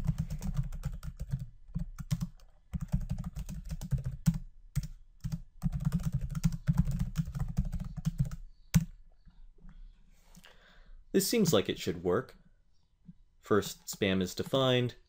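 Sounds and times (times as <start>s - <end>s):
typing on computer keyboard: 0.0s - 8.9s.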